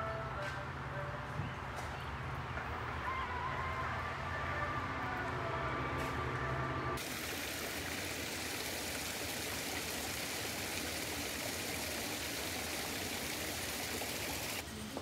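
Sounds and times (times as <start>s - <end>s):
water splashing into pond: 7.0s - 14.6s.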